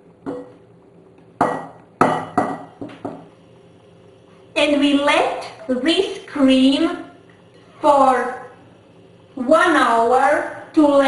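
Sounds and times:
pot and glass bowl knocking: 0:01.4 - 0:03.3.

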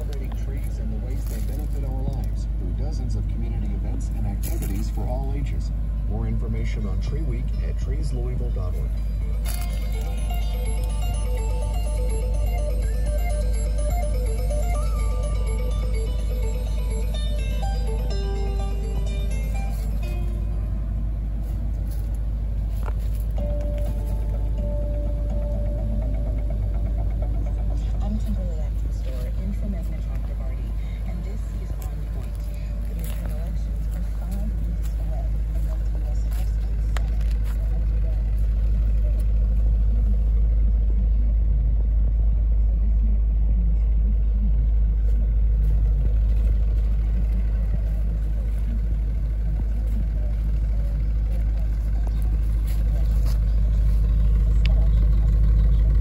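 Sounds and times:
car engine idling: 0:00.0 - 0:56.0.

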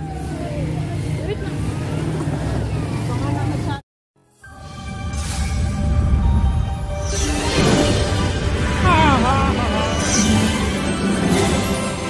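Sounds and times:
faint voices: 0:00.0 - 0:03.8
vehicle engine humming: 0:00.0 - 0:03.8.

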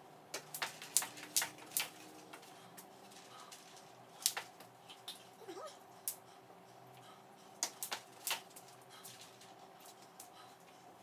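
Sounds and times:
jump rope slapping floor: 0:00.3 - 0:02.9, 0:03.6 - 0:05.2, 0:07.6 - 0:10.3.

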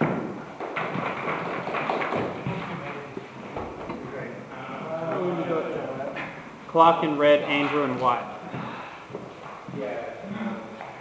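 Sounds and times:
footsteps on hard floor: 0:00.0 - 0:04.1, 0:08.4 - 0:09.8.

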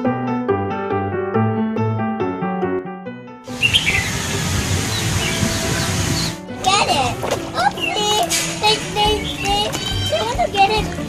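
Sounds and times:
background music: 0:00.0 - 0:11.0
bird chirps: 0:03.5 - 0:06.4, 0:09.1 - 0:10.2
steady outdoor hiss: 0:03.5 - 0:11.0.

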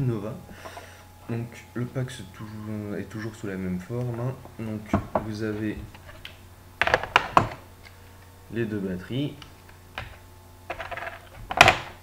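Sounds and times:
small hard items clicking: 0:10.0 - 0:12.0.

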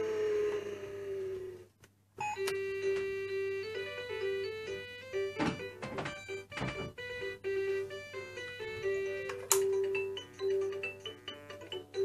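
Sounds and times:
toy playing beeping electronic tune: 0:02.2 - 0:12.0.

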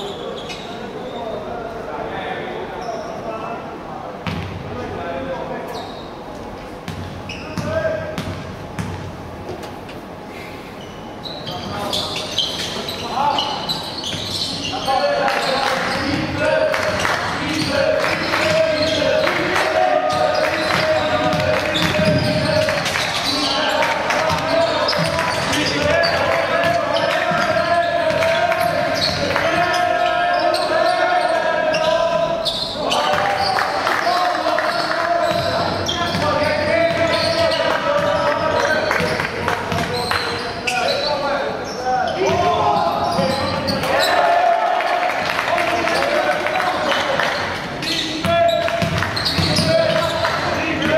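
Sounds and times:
voices in a large hall: 0:00.0 - 0:50.9.

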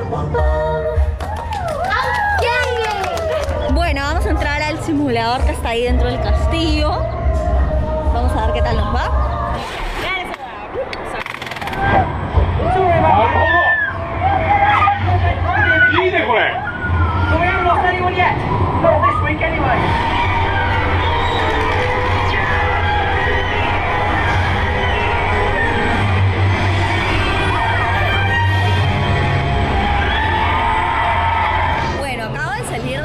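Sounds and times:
voices rising and falling in pitch: 0:01.2 - 0:32.5
steady music: 0:03.4 - 0:10.0, 0:13.9 - 0:33.0
low rumble: 0:03.5 - 0:33.0.

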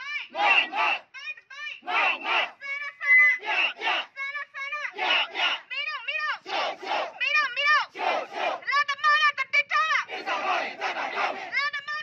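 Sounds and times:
crowd chanting: 0:00.3 - 0:01.1, 0:01.8 - 0:02.6, 0:03.4 - 0:04.2, 0:04.9 - 0:05.7, 0:06.4 - 0:08.7, 0:10.0 - 0:11.6.

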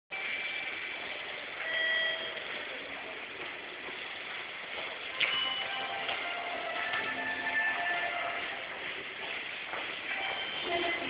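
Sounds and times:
train station concourse noise: 0:00.1 - 0:11.0
short electronic beeps: 0:01.6 - 0:02.4, 0:10.1 - 0:11.0.

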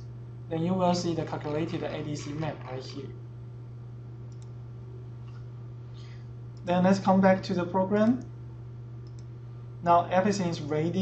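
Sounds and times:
steady low hum: 0:00.0 - 0:11.0
computer mouse click: 0:04.3 - 0:04.6, 0:09.0 - 0:09.3.

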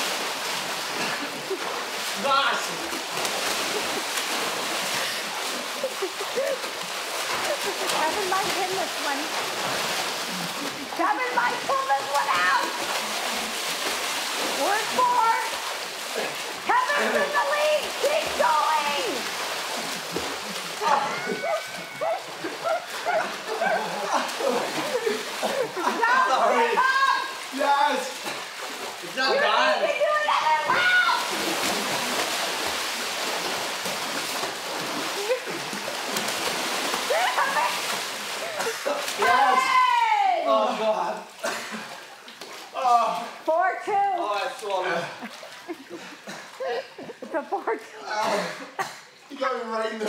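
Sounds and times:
water splashing and churning: 0:00.0 - 0:50.0
voices shouting: 0:16.6 - 0:19.3, 0:20.7 - 0:27.6, 0:29.2 - 0:31.4, 0:39.1 - 0:40.5.

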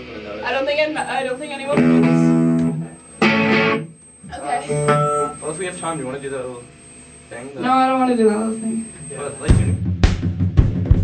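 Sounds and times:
people talking: 0:00.0 - 0:03.3, 0:04.2 - 0:09.8
electric guitar chord strums: 0:00.9 - 0:06.2.

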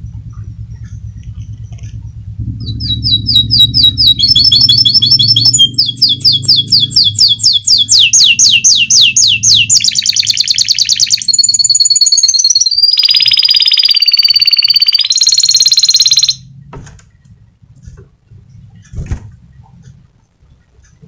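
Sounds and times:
canary singing trills: 0:00.0 - 0:17.4.

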